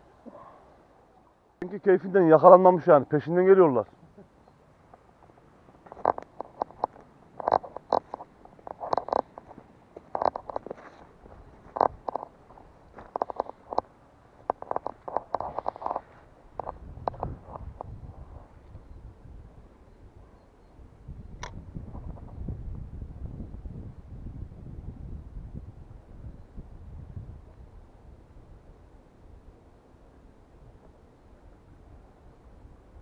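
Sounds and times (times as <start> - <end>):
footsteps crunching through brush: 5.2 - 13.8.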